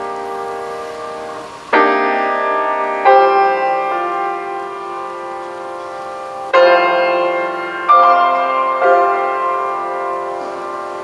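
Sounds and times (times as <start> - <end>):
grand piano playing slow chords: 0.0 - 11.0.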